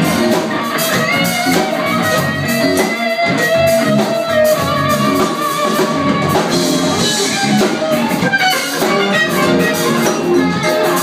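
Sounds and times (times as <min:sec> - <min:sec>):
rock band with electric guitar: 0:00.0 - 0:11.0.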